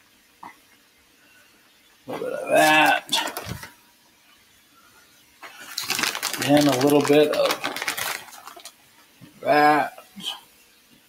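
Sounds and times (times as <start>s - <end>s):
plastic bag rustling: 2.5s - 3.8s, 5.4s - 8.8s.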